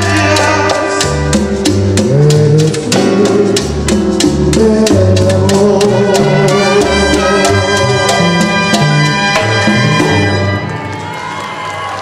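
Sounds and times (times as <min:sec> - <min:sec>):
live tropical band music: 0:00.0 - 0:11.2.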